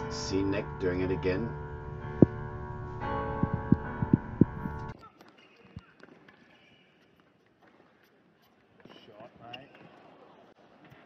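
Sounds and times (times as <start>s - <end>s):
piano music: 0.0s - 5.0s.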